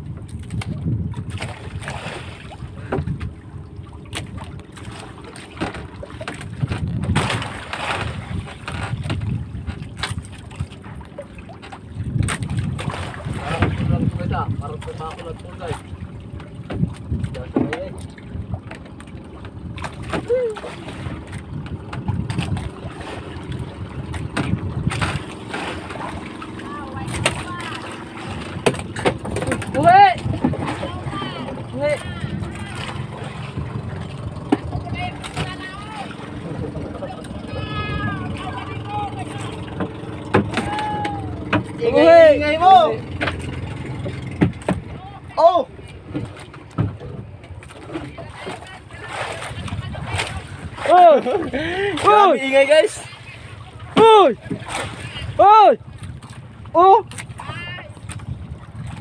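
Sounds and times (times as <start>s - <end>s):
water slapping against boat hull: 0.0s - 59.0s
wind buffeting microphone: 0.0s - 59.0s.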